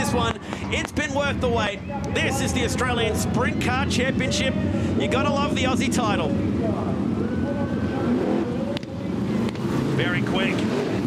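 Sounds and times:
race car engines rumbling: 0:00.0 - 0:11.0.

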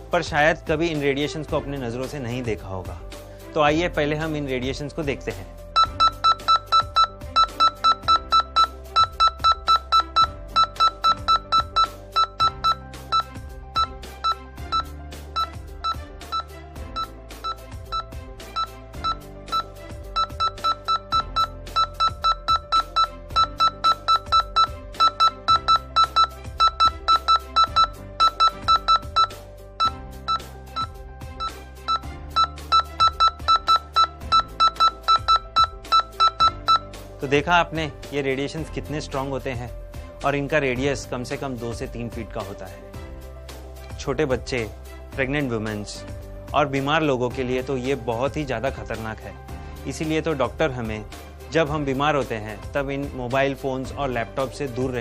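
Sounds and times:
background music: 0:00.0 - 0:55.0
radiation meter beeping: 0:05.8 - 0:36.9.

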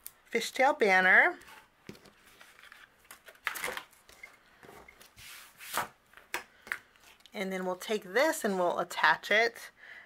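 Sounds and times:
paper rustling: 0:01.4 - 0:05.9.

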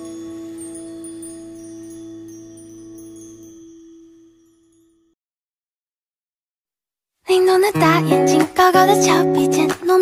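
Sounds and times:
pop song with singing voice: 0:07.3 - 0:10.0.

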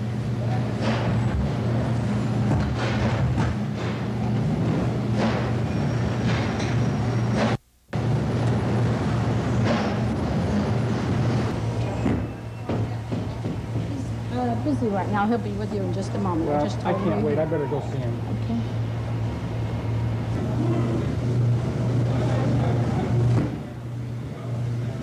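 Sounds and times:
low machine hum: 0:00.0 - 0:25.0.

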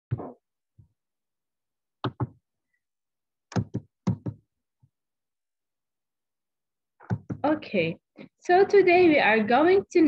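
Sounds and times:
sharp knocks and clicks at desk: 0:02.0 - 0:02.4, 0:03.5 - 0:04.5, 0:07.0 - 0:07.5.

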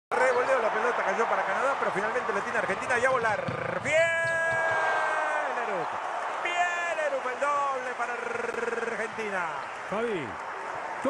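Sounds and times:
arena crowd noise: 0:00.1 - 0:11.0.

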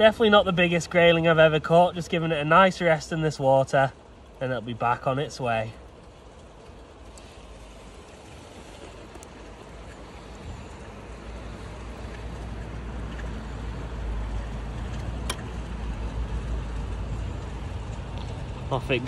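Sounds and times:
stream water running over stones: 0:00.0 - 0:15.3.

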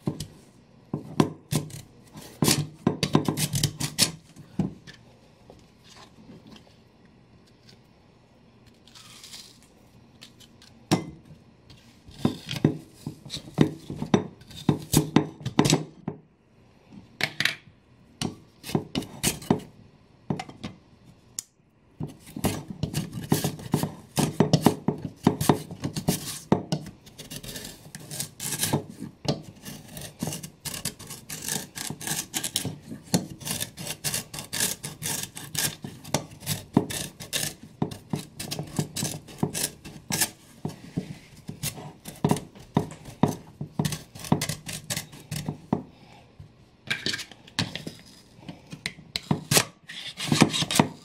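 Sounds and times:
sweet potato rasping on mandoline slicer: 0:27.1 - 0:45.7.

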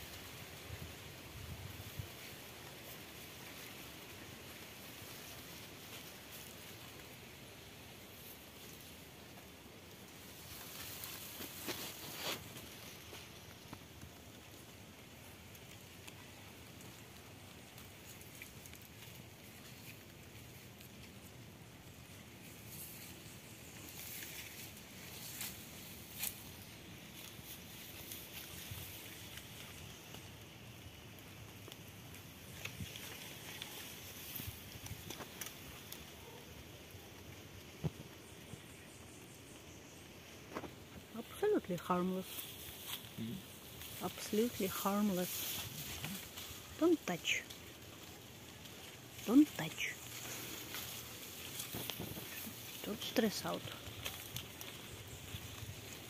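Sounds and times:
dry leaf litter crackling: 0:00.0 - 0:56.0
outdoor background hiss: 0:00.0 - 0:56.0
rustles: 0:00.0 - 0:56.0.

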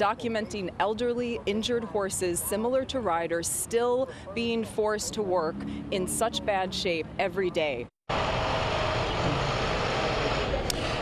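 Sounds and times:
city street traffic: 0:00.0 - 0:10.9.

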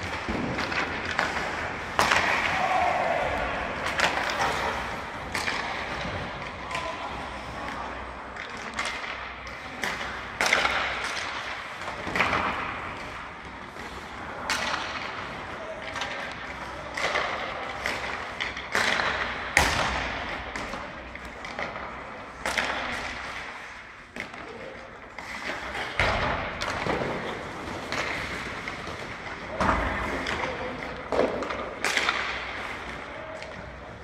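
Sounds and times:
hockey pucks struck by sticks: 0:00.0 - 0:34.0
pucks cracking against boards: 0:00.0 - 0:34.0.

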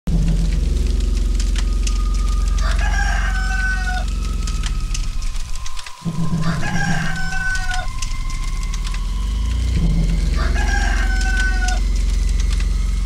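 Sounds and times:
loud low hum: 0:00.1 - 0:13.0
scattered clicks: 0:00.1 - 0:13.0
rooster crowing: 0:01.9 - 0:13.0.

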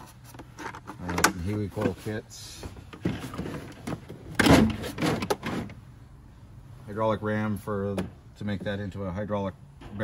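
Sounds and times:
plastic case scraping on metal shelf: 0:03.0 - 0:05.8.

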